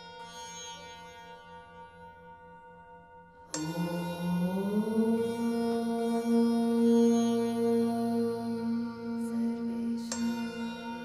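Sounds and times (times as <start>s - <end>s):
low chant-like droning tone: 0.0s - 11.0s.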